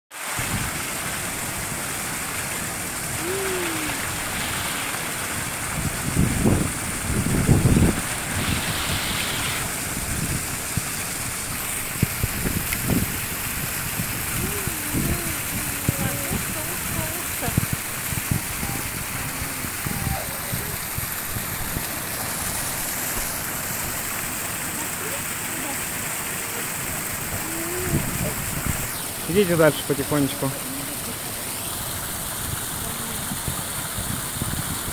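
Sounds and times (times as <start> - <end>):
small waterfall splashing: 0.1 - 34.9
low rumbles: 2.6 - 30.1
faint voices: 3.2 - 5.0, 14.4 - 17.8, 18.4 - 21.1, 24.5 - 28.6.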